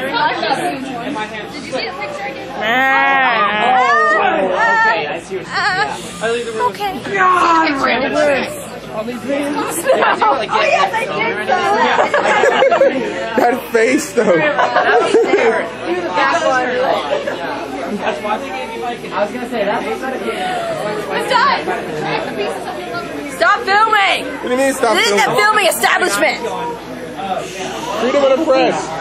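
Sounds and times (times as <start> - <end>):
people chattering: 0.0 - 29.0.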